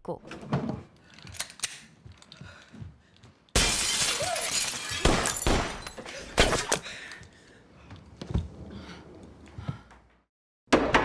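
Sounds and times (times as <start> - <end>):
glass shattering: 3.6 - 6.7.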